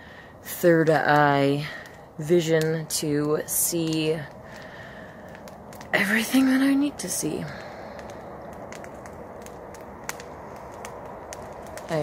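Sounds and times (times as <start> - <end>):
fire hiss: 0.0 - 12.0
wood fire crackling: 0.0 - 12.0.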